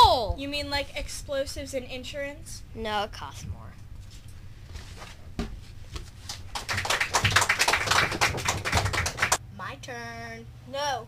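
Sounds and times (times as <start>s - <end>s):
people clapping: 6.2s - 9.4s.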